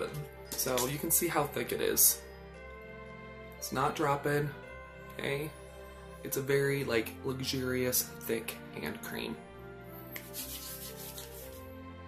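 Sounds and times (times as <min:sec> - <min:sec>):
quiet background music: 0:00.0 - 0:12.0
hands rubbing together: 0:10.1 - 0:11.7.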